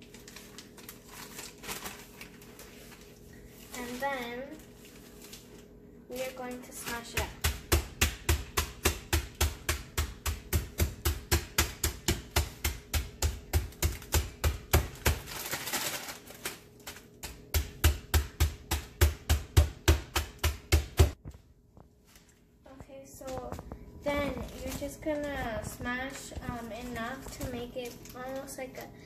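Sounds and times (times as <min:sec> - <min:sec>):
thumps pounding meat in plastic bag: 0:06.7 - 0:16.1, 0:17.2 - 0:21.4.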